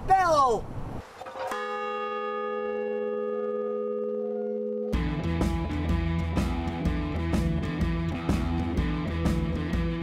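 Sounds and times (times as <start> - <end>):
large bell ringing: 1.5 - 5.9.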